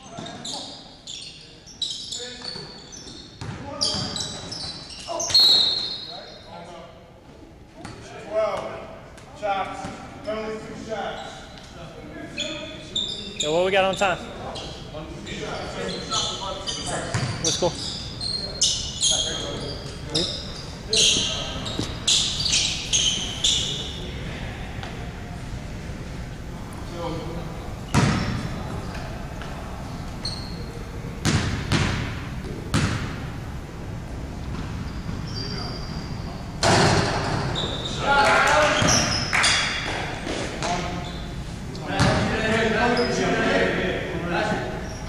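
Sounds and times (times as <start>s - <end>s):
sneakers squeaking on wooden floor: 0.0s - 6.5s, 12.3s - 14.9s, 15.5s - 24.1s, 27.8s - 33.1s, 34.4s - 42.2s, 42.8s - 43.2s
basketball bouncing: 3.4s - 4.1s, 17.1s - 17.4s, 27.9s - 28.5s, 31.2s - 33.3s.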